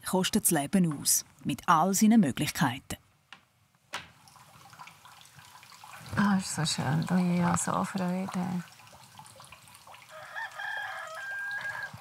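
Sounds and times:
rooster crowing: 10.1s - 12.0s.

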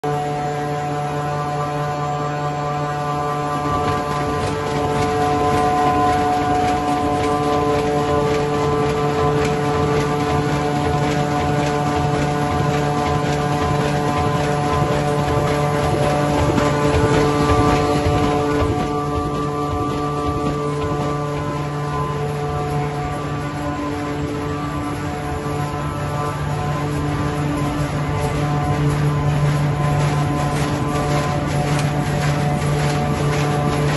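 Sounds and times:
fast machine clatter: 0.0s - 33.9s
printing machine hum: 0.0s - 33.9s.

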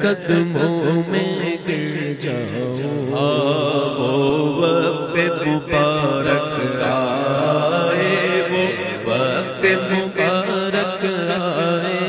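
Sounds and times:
man chanting a devotional melody: 0.0s - 12.0s.

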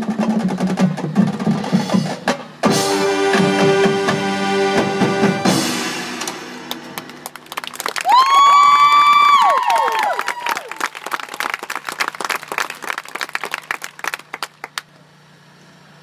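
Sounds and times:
marching band chord: 0.0s - 7.6s
crowd applauding: 6.7s - 14.9s.

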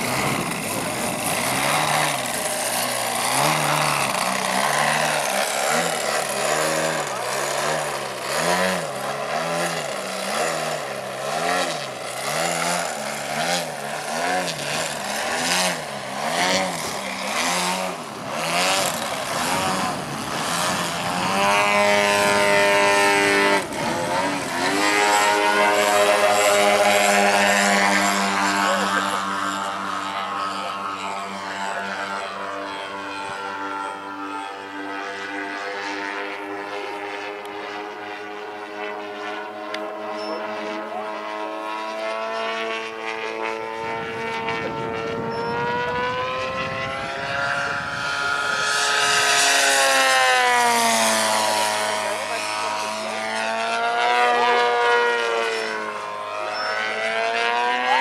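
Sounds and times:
model aircraft engine and propeller: 0.0s - 58.0s.

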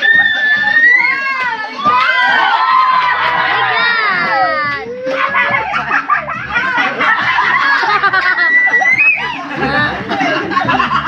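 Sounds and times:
people laughing and squealing: 0.0s - 11.0s.

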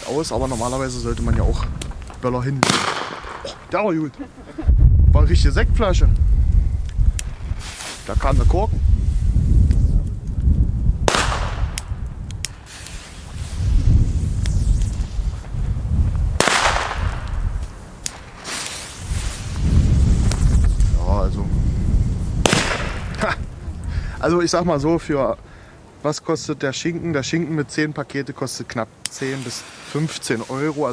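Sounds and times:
wind buffeting microphone: 0.0s - 25.6s
firecracker bangs with echo: 2.6s - 3.6s, 11.0s - 12.0s, 16.4s - 17.5s, 22.4s - 23.2s.

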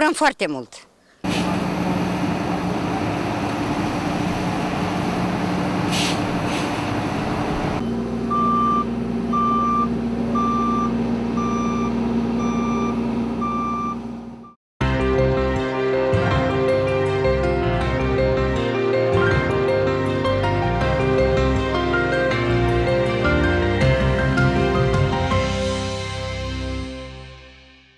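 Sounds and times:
diesel machinery hum: 1.2s - 26.8s
road roller engine: 1.2s - 26.9s
reversing alarm beeping: 7.8s - 14.6s.

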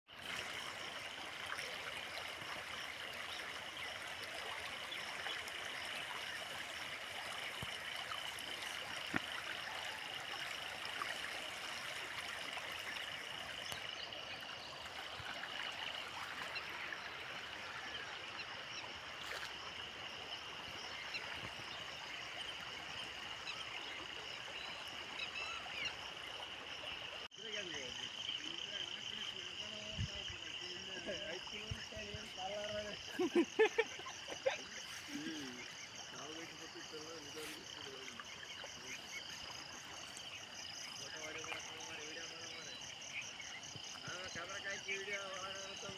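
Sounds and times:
floodwater rushing: 0.1s - 27.3s, 28.7s - 45.9s.

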